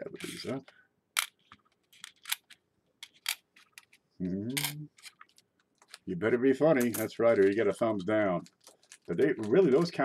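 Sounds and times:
coins clicking together: 4.6s - 5.3s.

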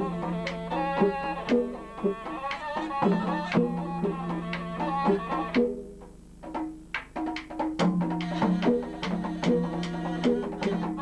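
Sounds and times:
traditional melody: 0.0s - 6.2s, 7.9s - 11.0s.

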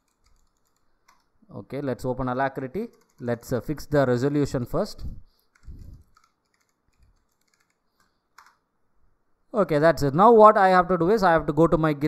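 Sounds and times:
computer keyboard keystrokes: 0.0s - 1.3s, 2.9s - 3.2s, 5.5s - 8.6s.

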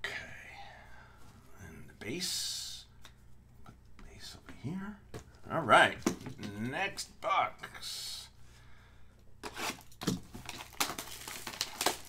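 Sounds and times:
plastic shrink wrap crinkling and tearing: 9.4s - 12.0s.

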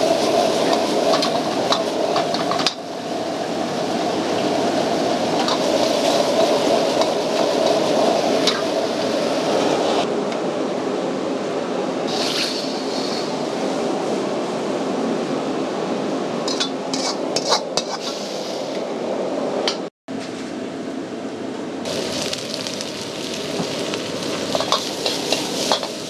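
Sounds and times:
gas burner roaring: 0.0s - 19.8s, 21.6s - 26.0s.

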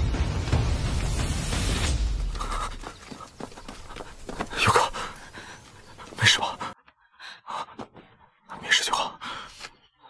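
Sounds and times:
man panting hard: 2.3s - 8.3s.

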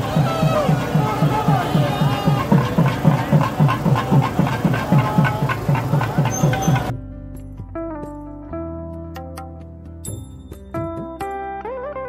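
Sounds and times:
procession drums beating: 0.0s - 6.9s.

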